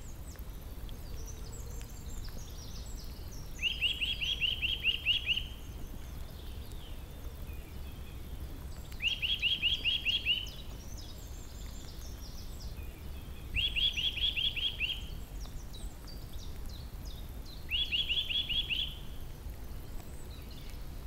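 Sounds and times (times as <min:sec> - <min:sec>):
faint bird chirps: 0:00.0 - 0:20.9
songbird singing: 0:00.0 - 0:21.0.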